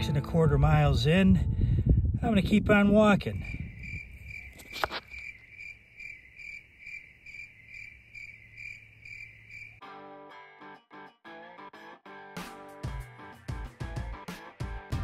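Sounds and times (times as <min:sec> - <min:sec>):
strummed guitar music: 0:00.0 - 0:01.0, 0:09.8 - 0:15.0
low wind rumble: 0:00.0 - 0:05.4.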